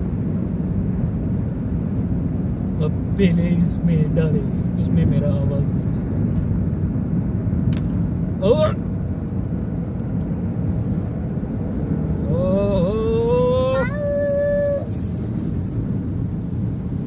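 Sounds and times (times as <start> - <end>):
road and tyre noise in car: 0.0 - 17.0.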